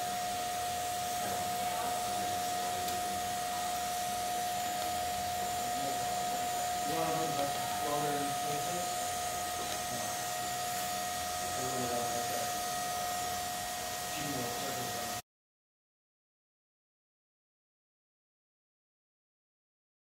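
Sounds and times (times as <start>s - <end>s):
steady high tone: 0.0s - 15.2s
welding arc hissing: 0.0s - 15.2s.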